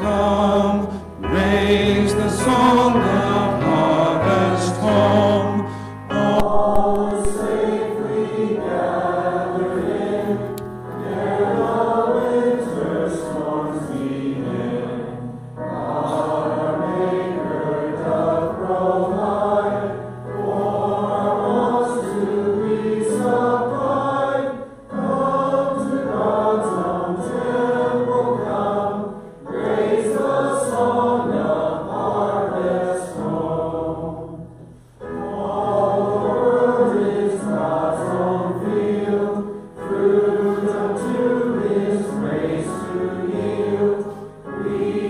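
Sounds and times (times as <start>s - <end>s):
acoustic guitar and keyboard: 0.0s - 13.1s
people singing worship song: 0.0s - 45.0s.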